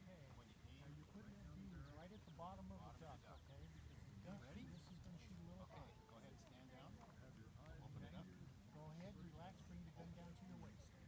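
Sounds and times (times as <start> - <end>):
faint distant voices talking: 0.0 - 11.0.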